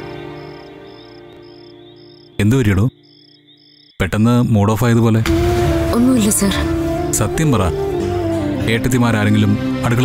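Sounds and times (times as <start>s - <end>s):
crickets chirping: 0.0s - 4.3s
background music: 0.0s - 10.0s.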